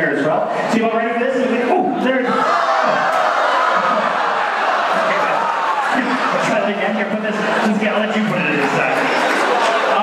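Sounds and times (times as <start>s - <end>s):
crowd cheering and shouting: 0.0s - 10.0s.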